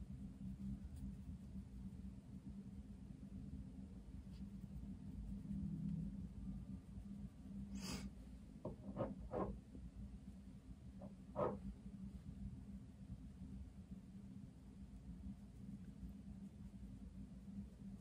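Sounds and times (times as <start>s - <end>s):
low steady hum: 0.0s - 18.0s.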